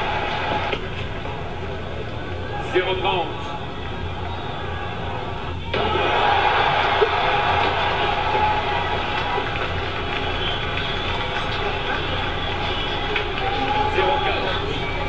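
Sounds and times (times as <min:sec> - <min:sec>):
faint voices: 0:08.2 - 0:15.0.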